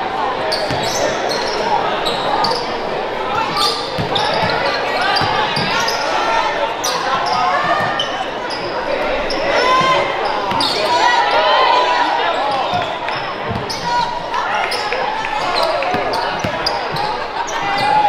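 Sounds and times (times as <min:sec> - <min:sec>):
voices calling out in gym: 0:00.0 - 0:18.0.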